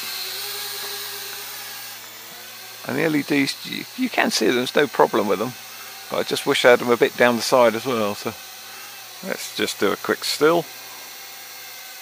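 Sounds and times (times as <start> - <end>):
toy quadcopter hovering hum: 0.0 - 12.0.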